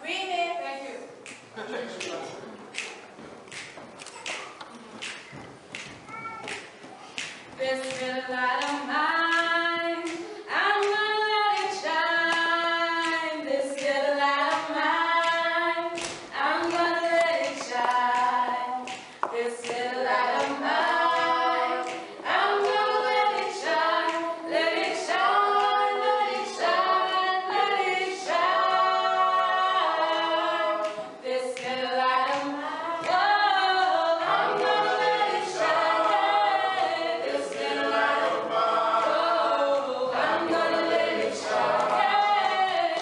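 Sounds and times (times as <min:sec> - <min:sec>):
group singing a cappella: 0:07.2 - 0:43.0.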